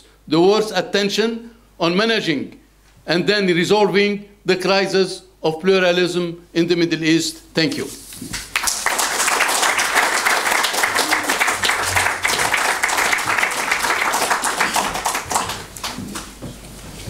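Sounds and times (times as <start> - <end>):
audience applauding: 8.4 - 16.4.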